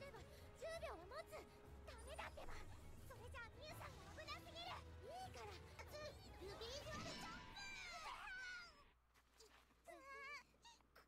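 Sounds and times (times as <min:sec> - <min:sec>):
high-pitched girl's voice: 0:00.0 - 0:08.8, 0:09.8 - 0:11.0.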